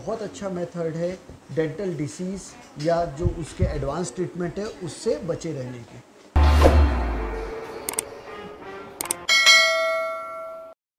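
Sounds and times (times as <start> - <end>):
bell chime ringing: 6.4 - 10.8.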